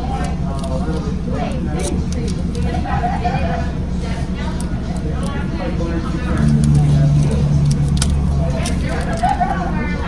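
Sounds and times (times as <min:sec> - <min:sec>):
car engine idling: 0:00.0 - 0:10.0
faint voices: 0:00.0 - 0:10.0
steady hum: 0:00.0 - 0:10.0.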